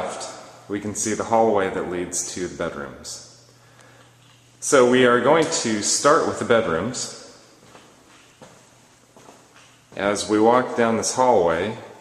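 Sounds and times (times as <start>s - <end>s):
faint footsteps on hard floor: 7.6s - 10.1s.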